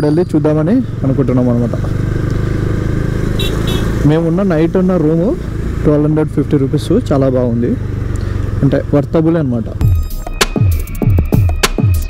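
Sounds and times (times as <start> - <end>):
road noise: 0.0 - 11.0
motorcycle engine drone: 0.0 - 12.0
man talking: 4.0 - 7.8, 8.6 - 9.8.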